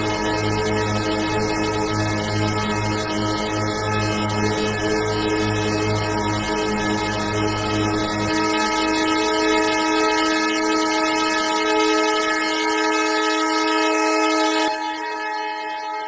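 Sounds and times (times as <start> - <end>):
synth drone chord: 0.0 - 16.0.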